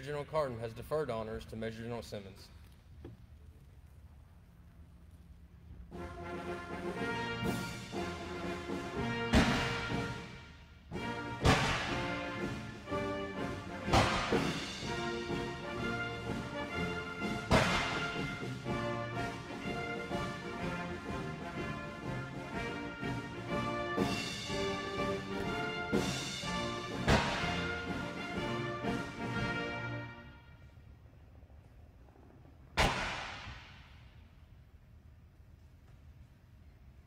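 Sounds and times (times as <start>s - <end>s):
military band playing: 5.9s - 30.7s
cannon shots: 9.2s - 10.1s, 11.4s - 12.3s, 13.8s - 14.8s, 17.5s - 18.5s, 26.9s - 27.9s, 32.8s - 34.0s.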